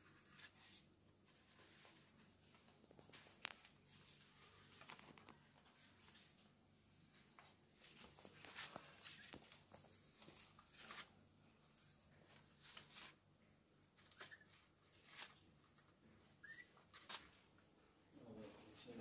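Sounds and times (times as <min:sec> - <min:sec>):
kittens rustling on cloth: 0:00.0 - 0:19.0.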